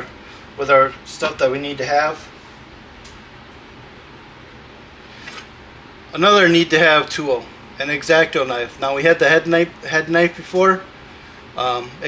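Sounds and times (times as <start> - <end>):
steady low hiss: 0.0 - 12.0
faint brief rustle: 5.1 - 5.5.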